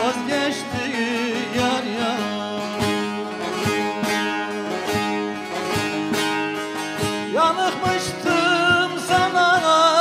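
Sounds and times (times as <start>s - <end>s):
long-necked lute plucked: 0.0s - 10.0s
man singing with vibrato: 0.0s - 10.0s.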